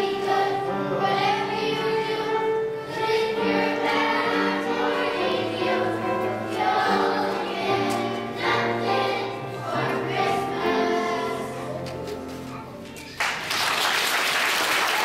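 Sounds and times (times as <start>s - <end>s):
children's choir singing: 0.0s - 12.5s
musical accompaniment: 0.0s - 13.6s.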